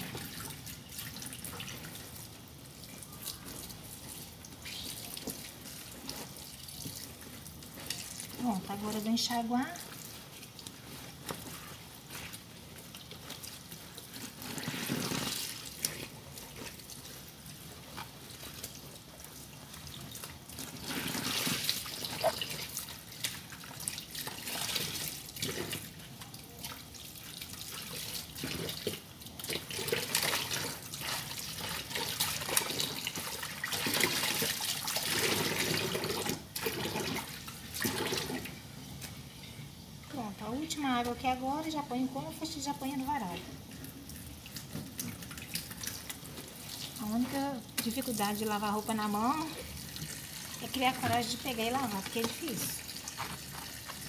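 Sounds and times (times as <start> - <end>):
wet clothes sloshing: 0.0 - 38.5, 40.9 - 54.0
tap water running: 0.0 - 39.2, 40.0 - 54.0.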